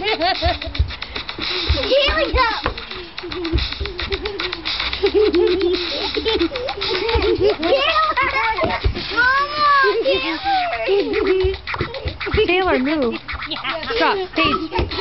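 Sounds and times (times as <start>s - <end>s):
girls laughing and giggling: 0.0s - 15.0s.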